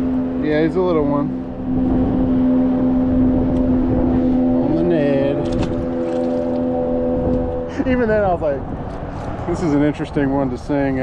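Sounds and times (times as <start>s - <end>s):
boat motor running: 0.0s - 9.9s.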